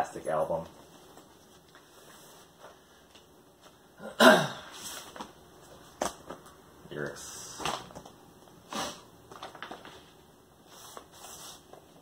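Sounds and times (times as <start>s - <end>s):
man coughing: 4.0s - 4.7s
paper sleeve rustling: 8.8s - 12.0s.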